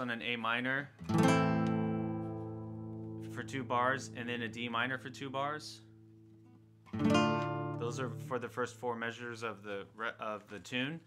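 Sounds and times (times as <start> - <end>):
classical guitar chord ringing: 1.0 - 5.2, 5.9 - 8.8.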